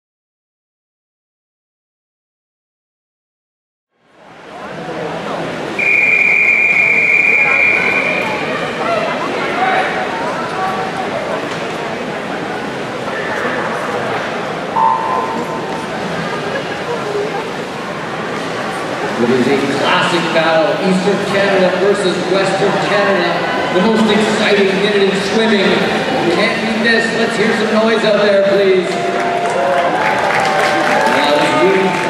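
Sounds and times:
crowd noise echoing indoors: 0:04.0 - 0:32.0
referee's whistle: 0:05.8 - 0:08.5
electronic start signal beep: 0:14.8 - 0:15.8.

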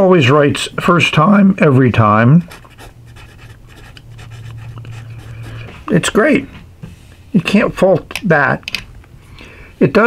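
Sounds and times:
low steady hum: 0:00.0 - 0:10.0
pen nib writing on paper: 0:02.5 - 0:05.7.

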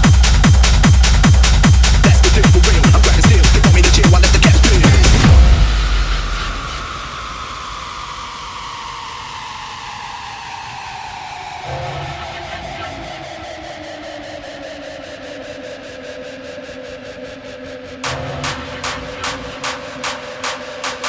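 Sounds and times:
pounding kick drum and bass: 0:00.0 - 0:13.3, 0:18.0 - 0:21.0.

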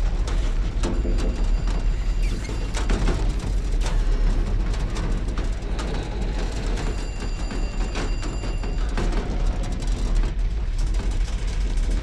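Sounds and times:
deep rumble of flames: 0:00.0 - 0:12.0.

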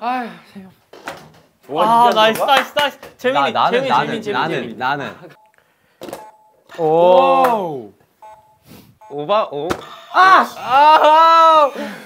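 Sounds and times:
man's drawn-out vocal cry: 0:10.0 - 0:12.0.

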